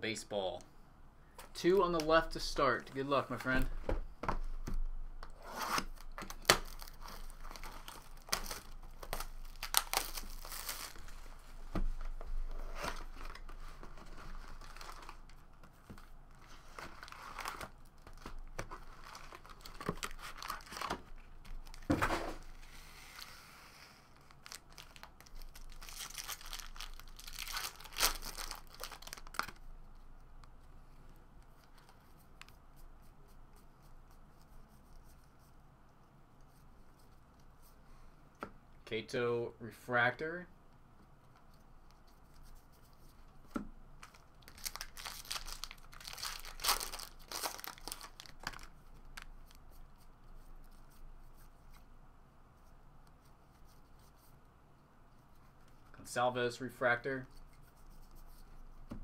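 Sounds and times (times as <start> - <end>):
foil wrappers tearing and crinkling: 6.0 - 11.1, 14.4 - 15.2, 16.8 - 18.3, 18.9 - 21.0, 24.2 - 29.5, 44.0 - 49.3.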